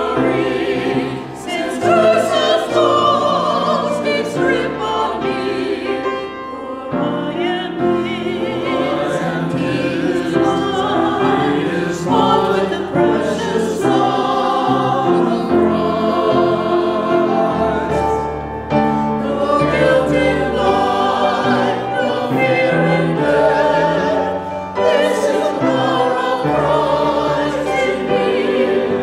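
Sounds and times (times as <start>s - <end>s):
church choir singing in parts: 0.0s - 29.0s.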